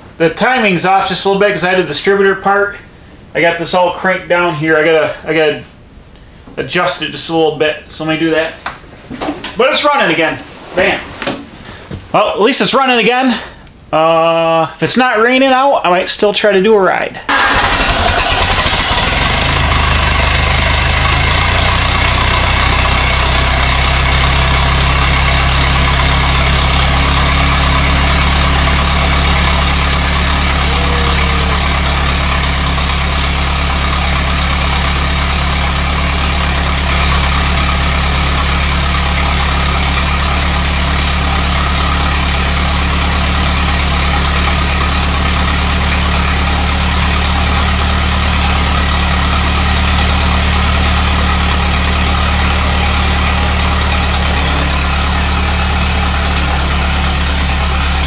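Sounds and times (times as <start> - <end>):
engine idling: 17.3 - 58.0.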